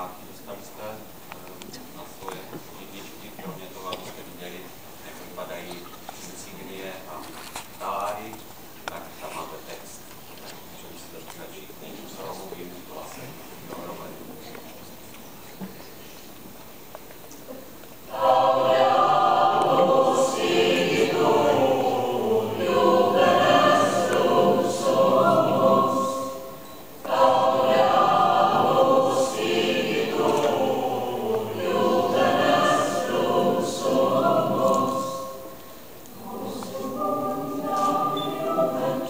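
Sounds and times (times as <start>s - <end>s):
choir singing: 18.1s - 39.0s.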